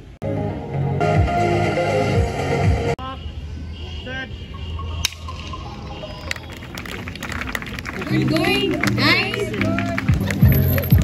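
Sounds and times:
background music with a beat: 0.2s - 3.0s, 4.8s - 6.7s, 9.6s - 11.0s.

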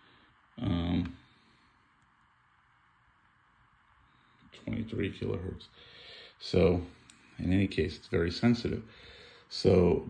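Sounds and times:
faint room hiss: 0.0s - 10.0s.

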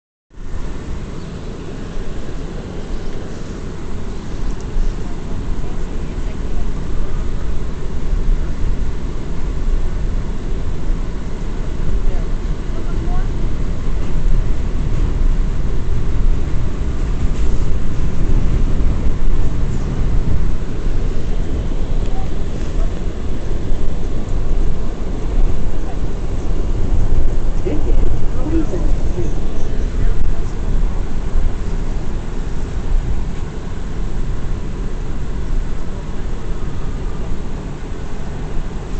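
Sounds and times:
subway wheels rumbling on rails: 0.3s - 38.9s.

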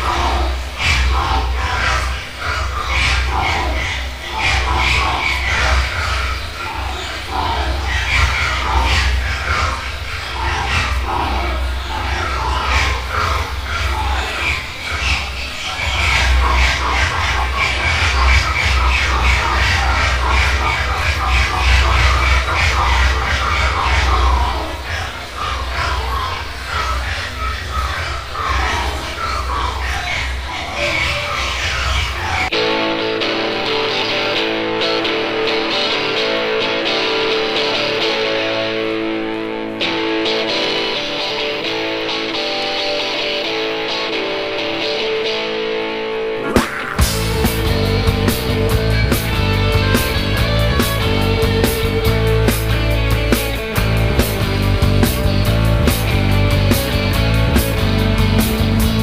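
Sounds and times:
crowd shouting: 0.0s - 59.0s
low drone: 0.0s - 59.0s.

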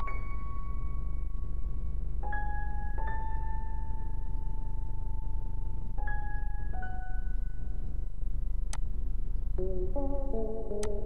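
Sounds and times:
steady low hum: 0.0s - 11.0s
plucked music notes: 9.6s - 11.0s.

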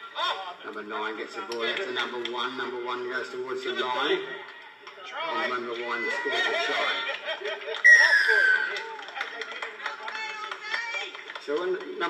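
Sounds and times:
spectators chattering and laughing: 4.1s - 10.4s
loud whistle blast: 7.8s - 8.8s.

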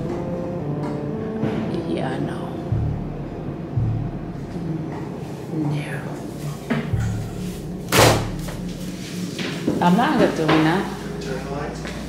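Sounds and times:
door shutting with a bang: 7.9s - 8.5s.

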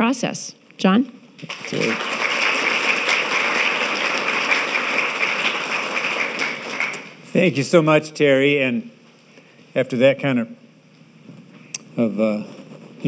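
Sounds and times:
audience applauding: 1.4s - 7.2s.

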